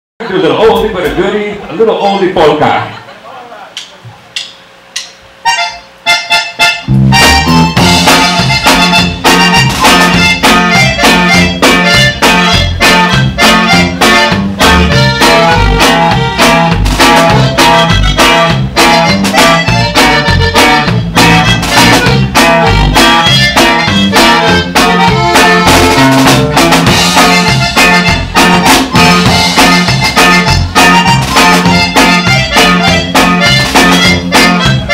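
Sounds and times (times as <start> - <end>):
accordion notes: 0.2 - 2.7, 5.0 - 34.9
polka band playing: 0.2 - 3.0, 4.4 - 34.9
sharp clicks: 3.8 - 5.2
drum kit: 4.1 - 34.9
bass line: 5.4 - 34.9.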